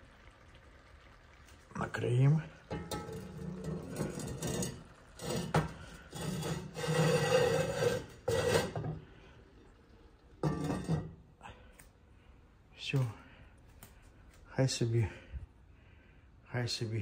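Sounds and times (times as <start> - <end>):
heavy lid scraping on pot rim: 2.7 - 9.1.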